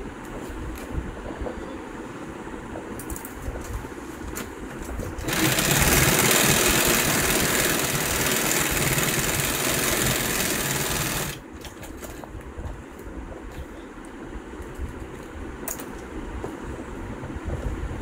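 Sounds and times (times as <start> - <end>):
sewing machine stitching: 5.2 - 11.4.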